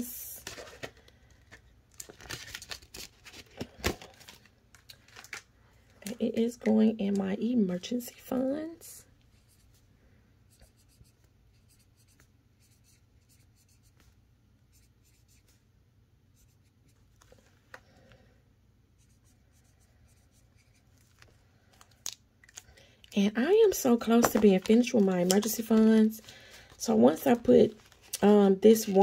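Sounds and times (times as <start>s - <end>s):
marker scratching on paper: 10.5s - 14.1s, 14.7s - 15.6s, 19.0s - 20.9s.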